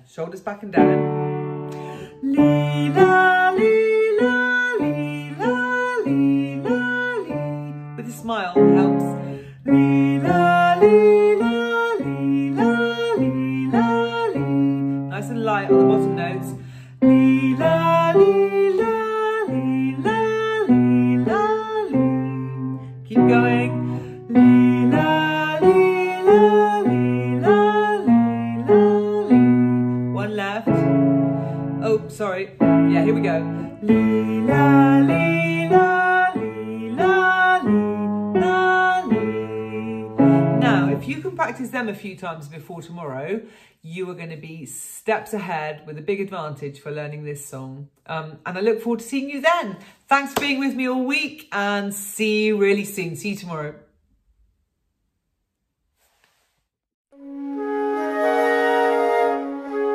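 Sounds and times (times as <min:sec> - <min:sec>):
instrumental accompaniment: 0:00.8 - 0:41.3, 0:57.1 - 0:59.9
woman singing vocal warm-up: 0:01.7 - 0:41.4.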